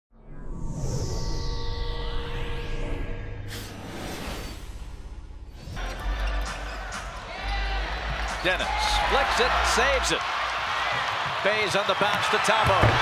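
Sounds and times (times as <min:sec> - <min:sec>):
crowd noise: 0:05.8 - 0:13.0.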